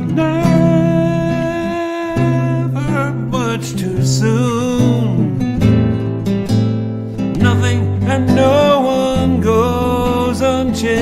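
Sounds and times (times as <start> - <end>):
nylon-string guitar: 0.0 - 11.0.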